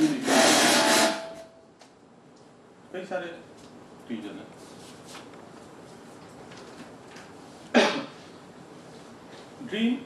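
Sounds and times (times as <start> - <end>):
rustling on microphone: 4.6 - 6.8.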